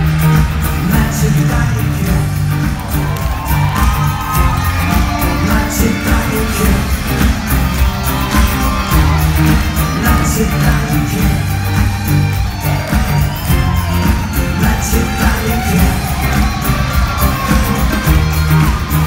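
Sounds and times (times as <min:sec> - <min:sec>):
live pop band playing: 0:00.0 - 0:19.0.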